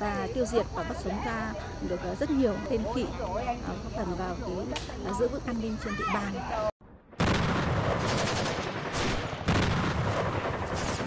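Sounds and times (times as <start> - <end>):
machine-gun bursts: 8.0 - 8.9.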